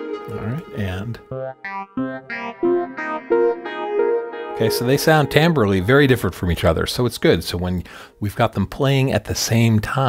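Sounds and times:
synth playing percussive notes: 0.0 - 6.9.

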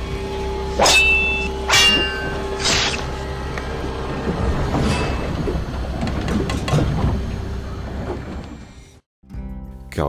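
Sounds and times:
held music drone: 0.0 - 8.7.

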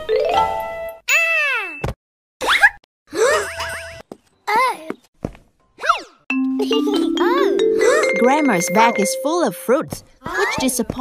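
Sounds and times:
bright chiming notes: 6.3 - 9.9.

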